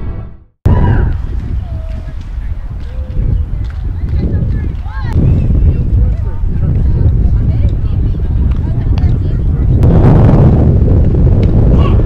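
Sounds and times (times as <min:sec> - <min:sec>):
wind buffeting microphone: 0:00.7 - 0:12.0
faint voices: 0:01.4 - 0:09.8.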